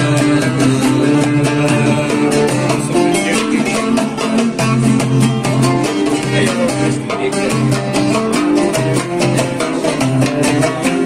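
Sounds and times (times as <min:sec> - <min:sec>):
acoustic guitar strumming chords: 0:00.0 - 0:11.0
mandole picking melody: 0:00.0 - 0:11.0.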